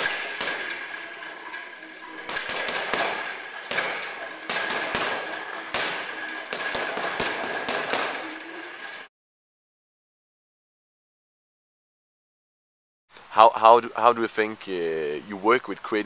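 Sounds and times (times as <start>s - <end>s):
boxing gloves punching a bag: 0.0s - 9.0s.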